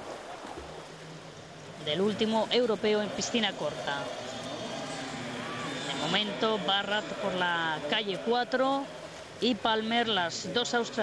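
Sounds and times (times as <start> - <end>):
indoor swimming arena noise: 0.0 - 11.0.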